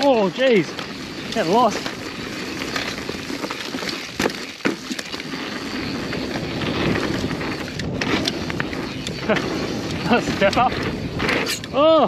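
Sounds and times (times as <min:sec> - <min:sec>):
bike knocks and rattles: 0:00.0 - 0:12.0
tyre and wind rush: 0:00.0 - 0:12.0.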